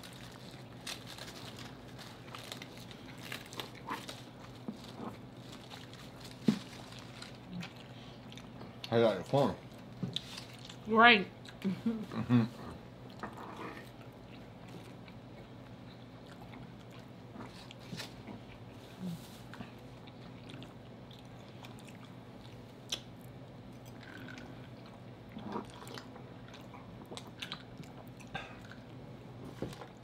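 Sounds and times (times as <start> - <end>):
people chewing food: 0.0 - 30.0
steady low hum: 0.0 - 30.0.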